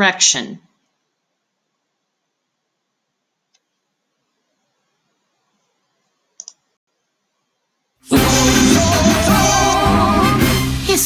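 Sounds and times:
computer mouse clicks: 6.4s - 6.6s.

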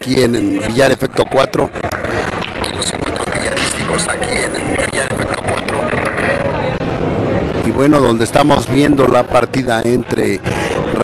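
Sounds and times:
murmur of voices: 0.0s - 11.0s
noisy hum: 0.0s - 11.0s.

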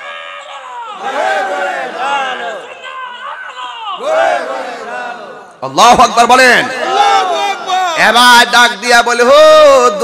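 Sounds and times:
crowd of men shouting: 0.0s - 5.4s, 6.8s - 8.3s.

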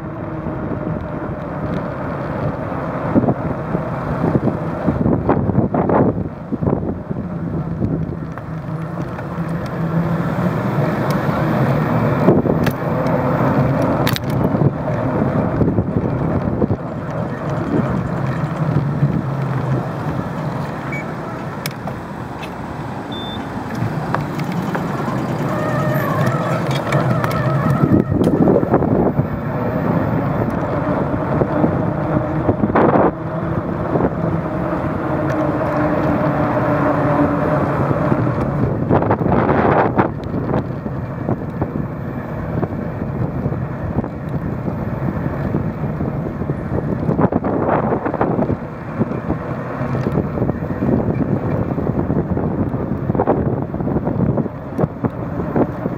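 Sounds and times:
road and tyre noise: 0.0s - 55.9s
wind rushing over microphone: 0.0s - 55.9s.

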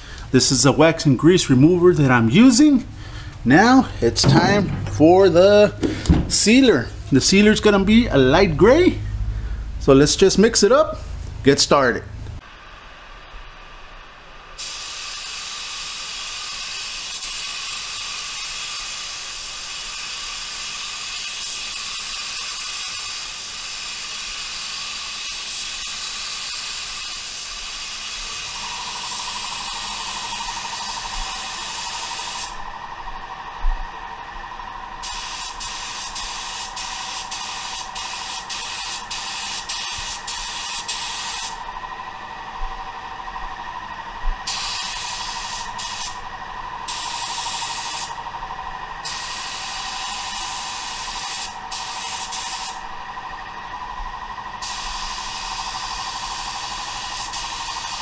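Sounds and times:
spray gun hissing: 14.6s - 32.6s, 35.0s - 41.6s, 44.4s - 46.2s, 46.8s - 48.2s, 49.0s - 52.9s, 54.6s - 58.0s.

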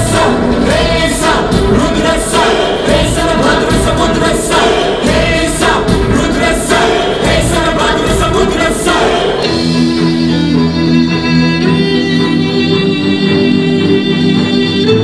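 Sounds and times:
man and girl singing: 0.0s - 9.4s
sharp beat: 0.0s - 9.9s
amplified music: 0.0s - 15.0s.

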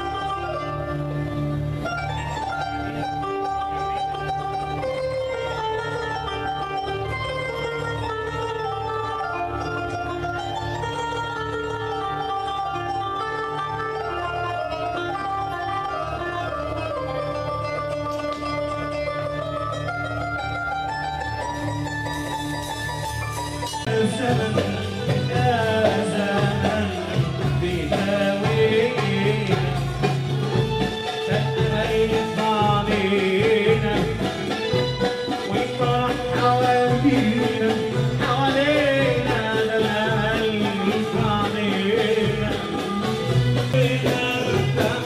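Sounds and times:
low musical backing: 0.0s - 45.0s
plucked string melody: 0.0s - 45.0s.

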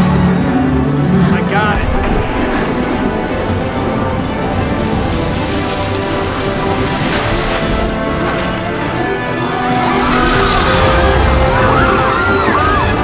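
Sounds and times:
noisy rush: 0.0s - 13.0s
orchestral music with held chords: 0.0s - 13.0s.

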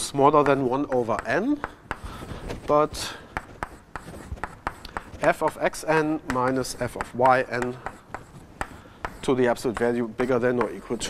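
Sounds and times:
chalk tapping and scratching on board: 0.0s - 11.0s.

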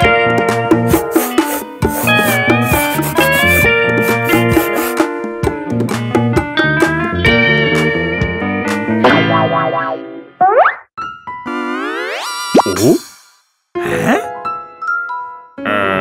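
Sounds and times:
upbeat guitar and drum music: 0.0s - 10.0s.

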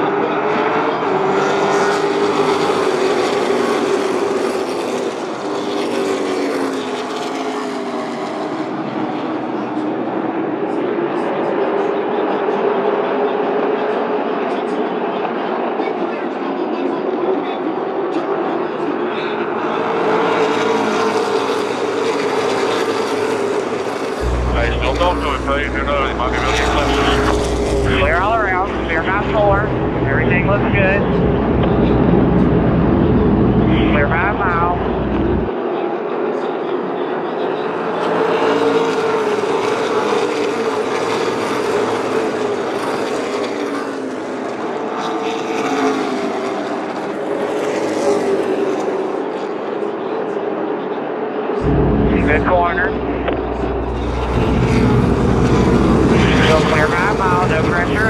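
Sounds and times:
race car engines circling: 0.0s - 58.0s
deep rumble: 24.2s - 35.5s, 51.6s - 58.0s.

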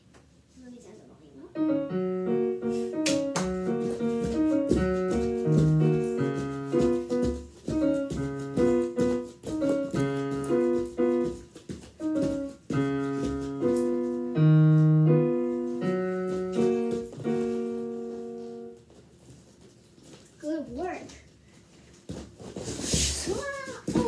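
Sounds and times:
digital piano playing: 1.6s - 18.8s.

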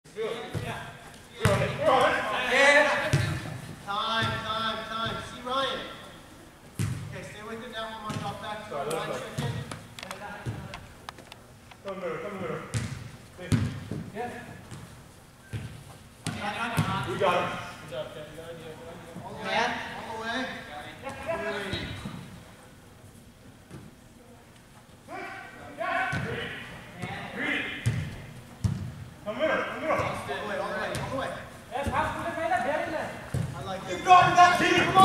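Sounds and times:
players' voices calling: 29.3s - 35.0s.

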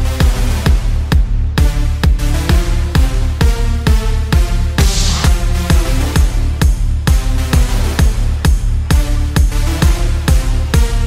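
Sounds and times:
electronic dance music: 0.1s - 11.0s.

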